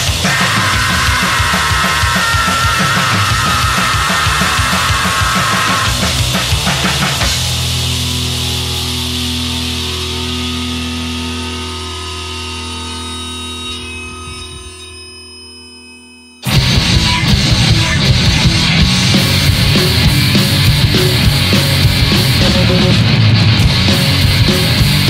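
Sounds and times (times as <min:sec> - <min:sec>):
loud rock track: 0:00.0 - 0:14.8, 0:16.4 - 0:25.0
held rock guitar chord ringing: 0:00.0 - 0:25.0.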